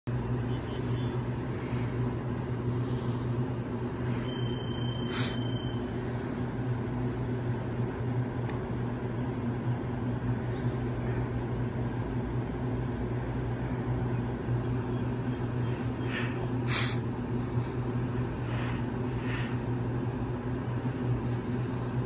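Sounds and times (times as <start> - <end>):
electric train humming: 0.1 - 22.0
high steady beep: 4.2 - 5.9.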